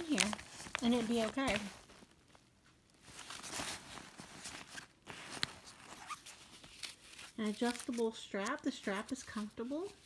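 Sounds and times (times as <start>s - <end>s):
nylon bag rustling: 0.0s - 10.0s.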